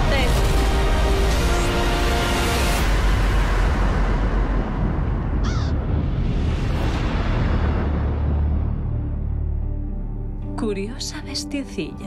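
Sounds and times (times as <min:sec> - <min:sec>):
deep low rumble: 0:02.8 - 0:11.0
raven cawing: 0:05.3 - 0:05.9.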